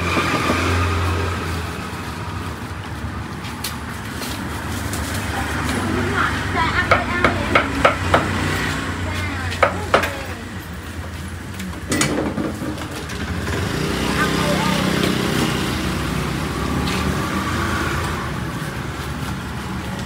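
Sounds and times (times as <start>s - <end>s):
motor scooter engine: 0.0s - 20.0s
people talking: 5.3s - 8.0s, 8.8s - 10.6s, 14.0s - 15.3s.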